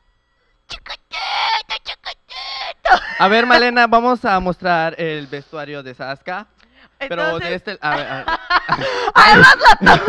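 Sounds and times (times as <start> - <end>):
person's raspy vocal outburst: 0.9 - 3.6.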